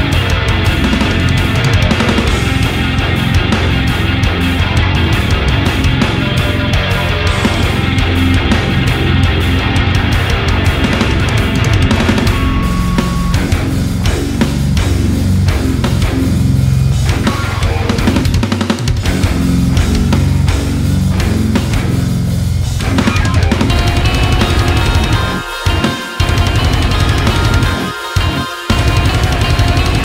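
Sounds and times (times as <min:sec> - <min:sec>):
driving drum beat: 0:00.0 - 0:30.0
heavy rock guitar: 0:00.0 - 0:30.0.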